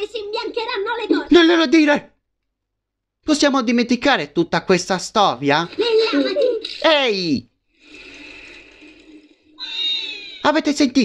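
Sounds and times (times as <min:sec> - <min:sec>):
tiny high-pitched cry: 0:09.6 - 0:10.5.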